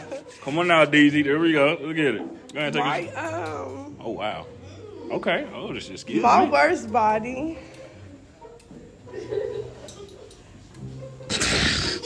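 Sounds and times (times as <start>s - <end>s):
man laughing breathily: 0.0s - 0.9s.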